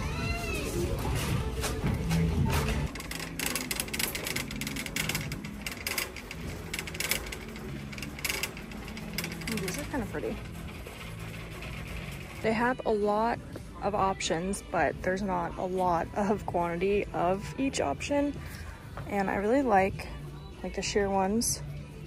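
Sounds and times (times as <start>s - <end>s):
background music: 0.0s - 22.0s.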